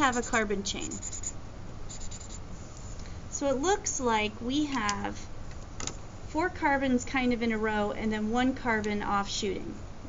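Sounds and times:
marker tip dabbing on paper: 0.0s - 2.4s.

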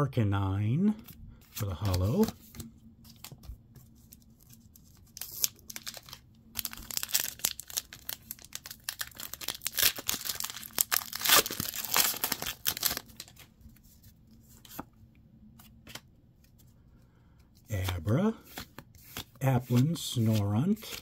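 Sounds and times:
foil wrapper crinkling: 5.1s - 13.4s.

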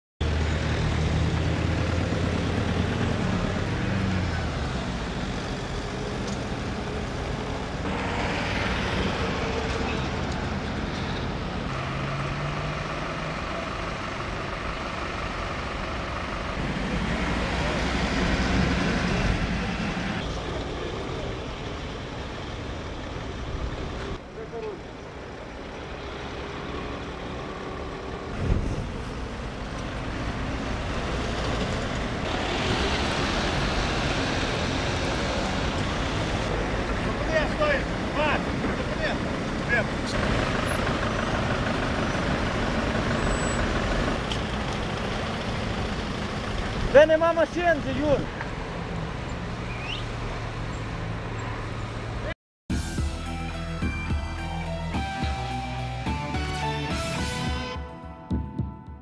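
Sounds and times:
car and truck engines passing: 0.2s - 58.3s.

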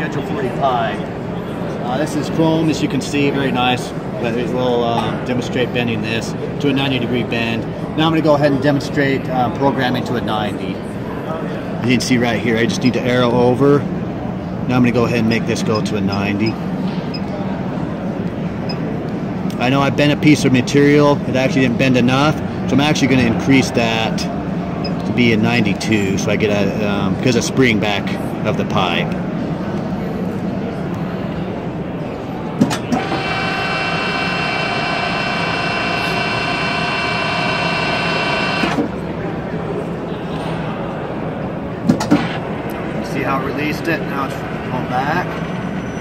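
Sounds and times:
mechanical hum: 0.0s - 46.0s
electric motor whining: 32.9s - 38.8s.

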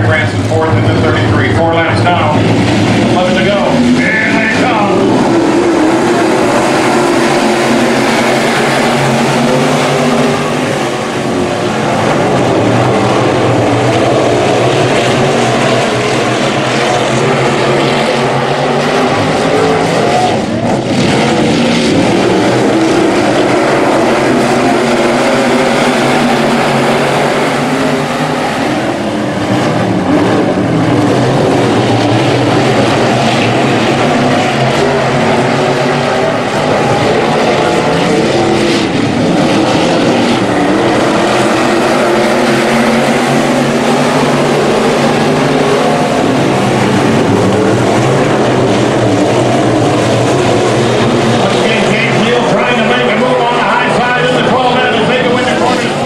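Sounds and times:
race car engines roaring: 0.0s - 56.0s.

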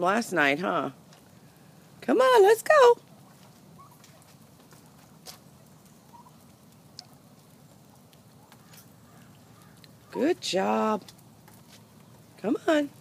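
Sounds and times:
wild turkeys clucking: 3.0s - 10.3s.

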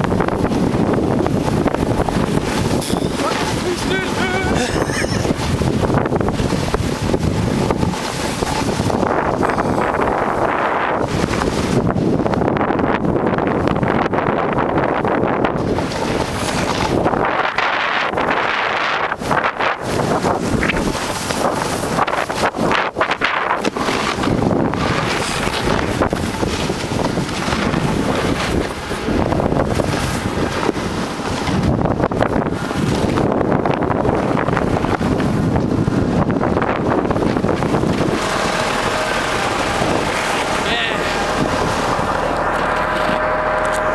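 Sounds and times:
wind rushing over microphone: 0.0s - 43.9s.

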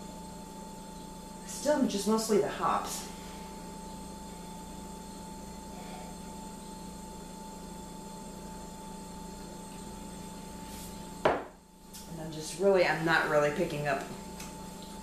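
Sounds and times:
room tone hiss: 0.0s - 15.0s.

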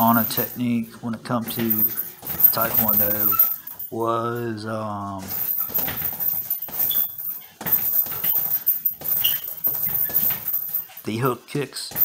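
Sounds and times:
punches thudding on heavy bag: 1.4s - 3.8s, 5.2s - 10.9s
short high squeaks: 1.5s - 3.8s, 5.3s - 11.0s.

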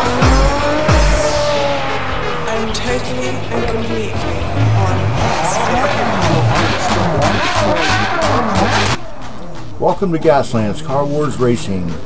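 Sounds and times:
music: 0.0s - 12.0s
race car engines revving: 0.0s - 12.0s
tyres squealing: 2.5s - 11.7s.

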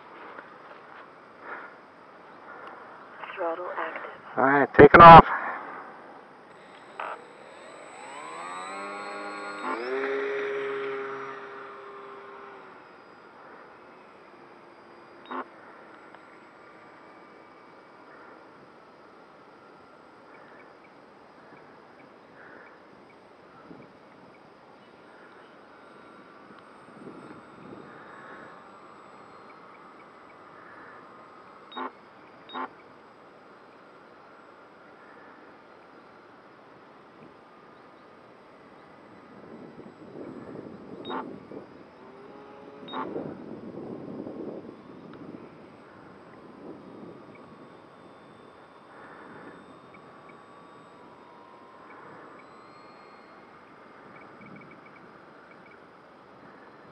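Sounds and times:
model airplane motor drone: 0.0s - 56.9s.

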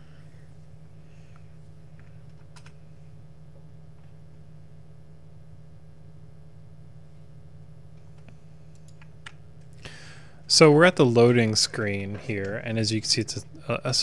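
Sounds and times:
steady low hum: 0.0s - 14.0s
computer keyboard clicks: 2.0s - 2.8s, 8.2s - 9.4s.

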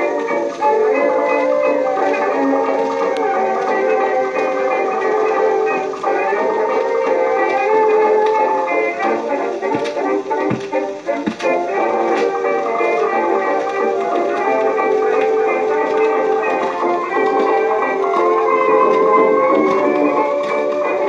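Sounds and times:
old dance orchestra recording: 0.0s - 21.0s.

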